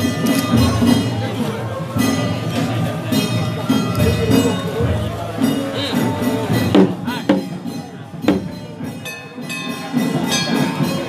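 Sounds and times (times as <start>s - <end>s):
sharp percussion beat: 0.0s - 11.0s.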